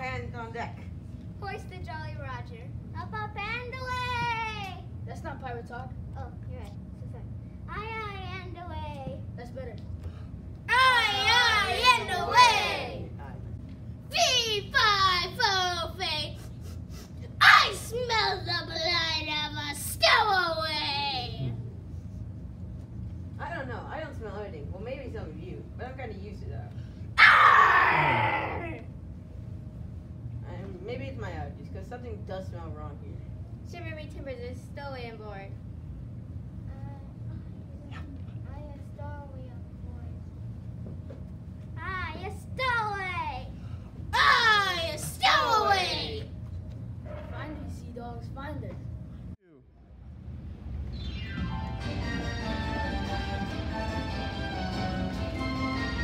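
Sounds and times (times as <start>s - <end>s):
children talking: 10.7s - 13.2s, 44.2s - 46.3s
children calling out: 27.2s - 28.8s.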